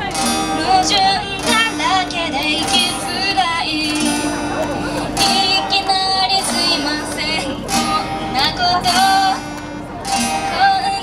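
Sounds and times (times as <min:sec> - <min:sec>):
woman singing: 0:00.0 - 0:04.4, 0:05.2 - 0:11.0
acoustic guitar strumming: 0:00.0 - 0:11.0.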